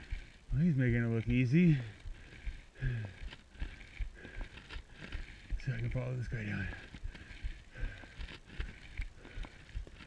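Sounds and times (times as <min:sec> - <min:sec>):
faint rustle: 0:00.0 - 0:10.0.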